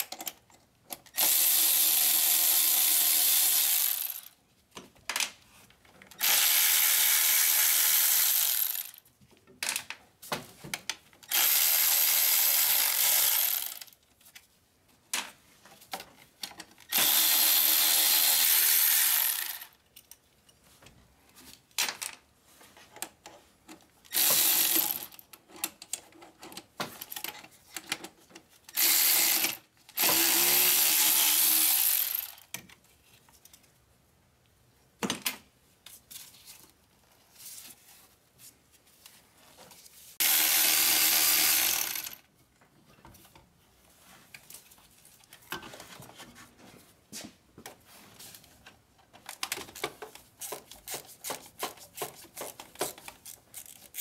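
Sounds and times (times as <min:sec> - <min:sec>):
electric ratchet spinning: 0:01.2 - 0:04.3, 0:06.2 - 0:09.0, 0:11.3 - 0:14.0, 0:16.9 - 0:19.8, 0:24.1 - 0:25.2, 0:28.7 - 0:32.5, 0:40.2 - 0:42.2.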